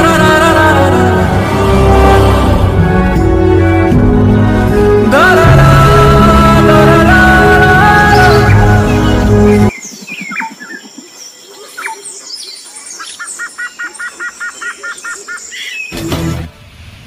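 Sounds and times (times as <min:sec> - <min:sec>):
music: 0:00.0 - 0:09.7, 0:15.9 - 0:16.7
songbirds chirping: 0:02.7 - 0:16.1.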